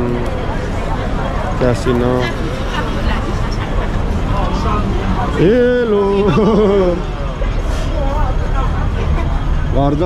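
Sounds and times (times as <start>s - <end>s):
faint voices of passers-by: 0.0s - 10.0s
low rumble of street traffic: 0.0s - 10.0s.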